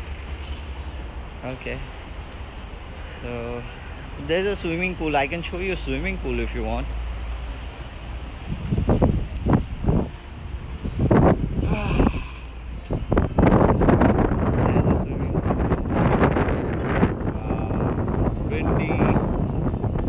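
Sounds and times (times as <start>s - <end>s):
constant low rumble: 0.0s - 20.0s
wind buffeting microphone: 8.2s - 20.0s.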